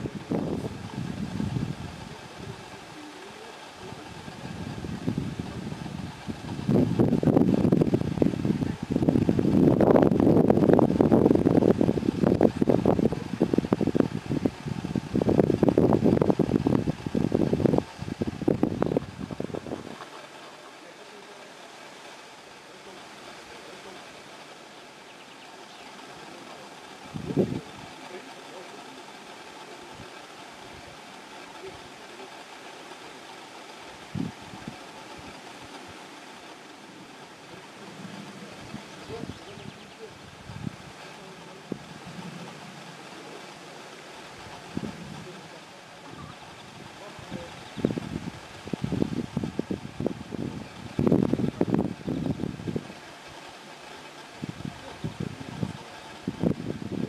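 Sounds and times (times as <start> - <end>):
wind buffeting microphone: 0.0 - 20.8, 25.8 - 28.7, 33.8 - 36.2, 36.8 - 57.0
low steady background: 0.0 - 57.0.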